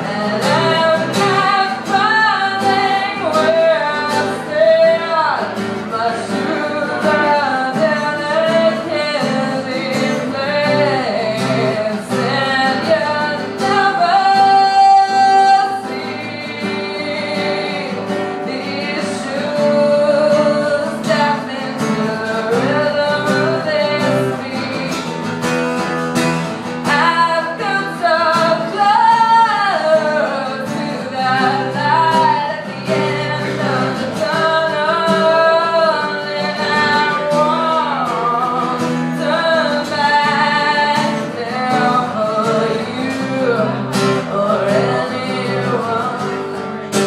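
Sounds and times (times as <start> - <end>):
acoustic guitar: 0.0 - 47.0
woman singing: 0.0 - 47.0.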